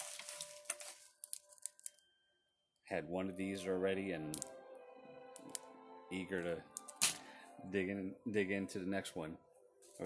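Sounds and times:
candy wrappers crinkling: 0:00.0 - 0:02.1, 0:06.7 - 0:07.3.

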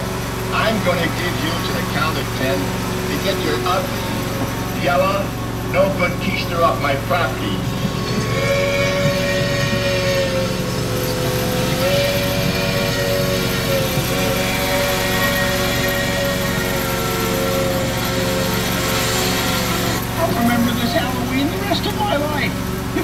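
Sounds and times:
held multi-pitch tone: 0:00.0 - 0:23.0
ride train humming: 0:00.0 - 0:23.0.

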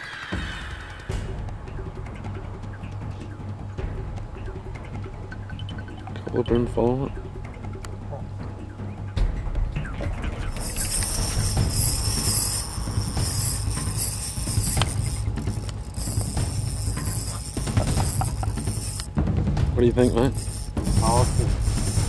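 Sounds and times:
fishing reel whirring: 0:10.5 - 0:19.2, 0:20.0 - 0:22.0.

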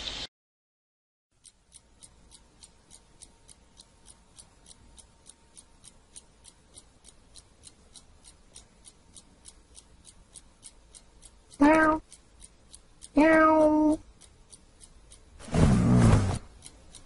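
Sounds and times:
clock ticking: 0:01.3 - 0:17.0.

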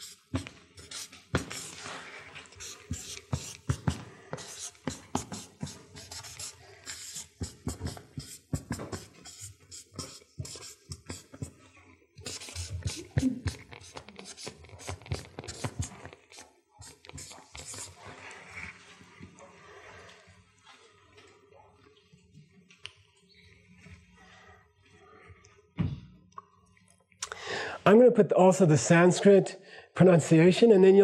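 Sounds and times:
marker pen on paper: 0:00.0 - 0:11.6, 0:12.2 - 0:19.4.

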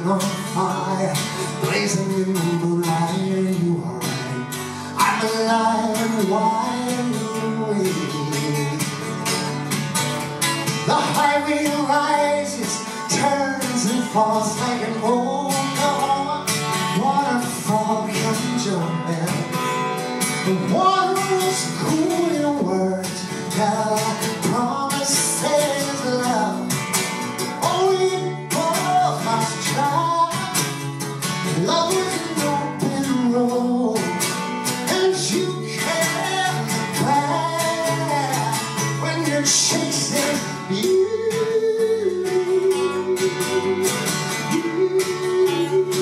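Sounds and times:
man singing: 0:00.0 - 0:09.8, 0:10.5 - 0:46.0
strummed acoustic guitar: 0:00.0 - 0:46.0.

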